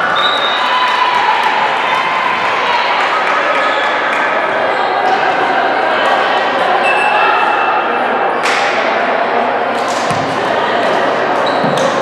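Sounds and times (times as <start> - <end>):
echoing chatter in gymnasium: 0.0 - 12.0.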